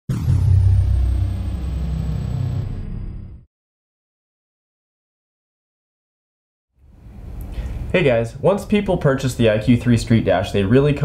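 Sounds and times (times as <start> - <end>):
deep loud rumble: 0.1 - 3.5
thin high whine: 0.1 - 3.5.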